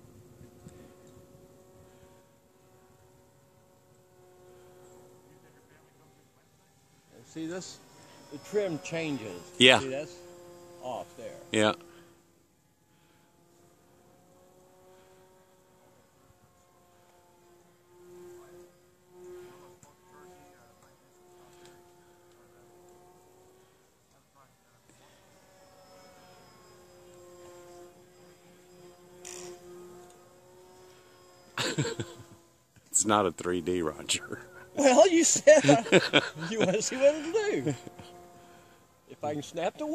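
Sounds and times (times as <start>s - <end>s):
model airplane motor drone: 0.0s - 39.9s.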